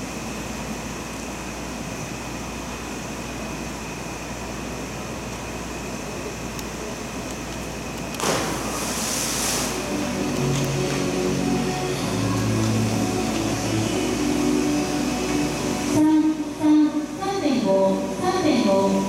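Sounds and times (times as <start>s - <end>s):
diver splashing into pool: 8.2s - 9.9s.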